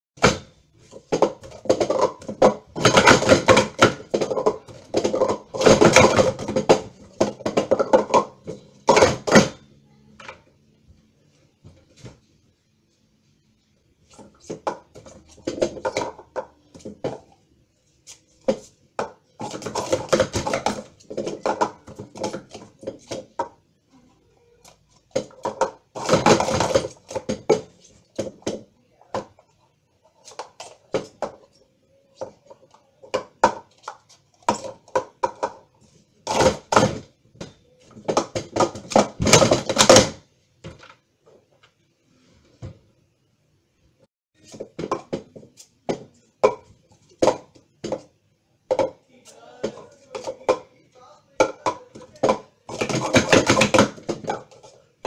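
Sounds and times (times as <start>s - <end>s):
plastic cups clattering on table: 0.2s - 10.4s, 14.0s - 23.6s, 24.7s - 41.5s, 44.4s - 50.8s, 51.4s - 55.0s.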